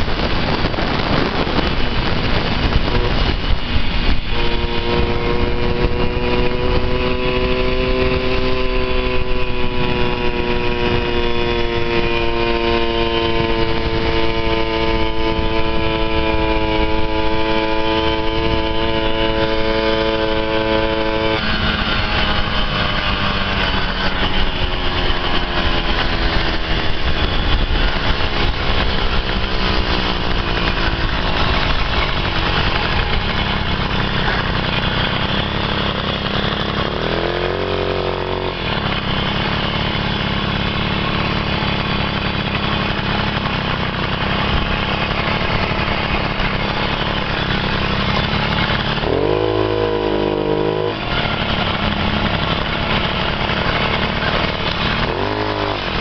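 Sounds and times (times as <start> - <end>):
engine revving bursts: 0.0 - 56.0
moped engine running: 0.0 - 56.0.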